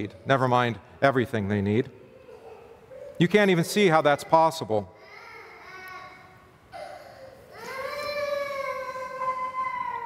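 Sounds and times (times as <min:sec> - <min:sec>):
small child crying: 0:05.0 - 0:10.0.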